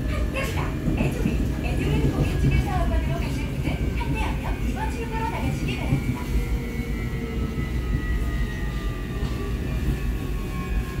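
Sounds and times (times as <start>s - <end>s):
subway train wheels rumbling: 0.0s - 11.0s.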